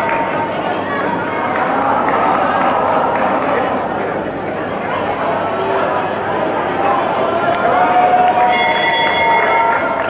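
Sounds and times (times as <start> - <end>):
crowd chatter in indoor hall: 0.0 - 10.0.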